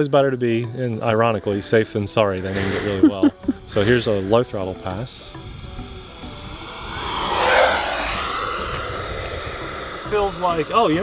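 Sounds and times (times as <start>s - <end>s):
model jet fan whine: 0.0s - 11.0s.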